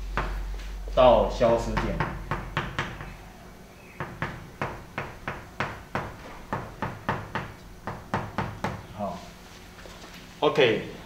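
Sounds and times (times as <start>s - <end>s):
chalk tapping on blackboard: 4.0s - 8.8s.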